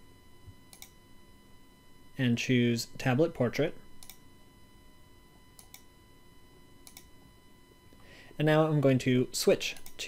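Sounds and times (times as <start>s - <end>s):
thin steady whine: 0.0s - 10.0s
computer mouse clicks: 0.7s - 1.0s, 4.0s - 4.2s, 5.6s - 5.9s, 6.8s - 7.1s, 9.7s - 10.0s.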